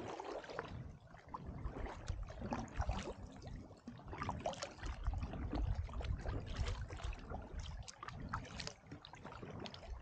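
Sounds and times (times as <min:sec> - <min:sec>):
paddle splashing in water: 0:00.0 - 0:10.0
wind rumble on microphone: 0:00.0 - 0:10.0.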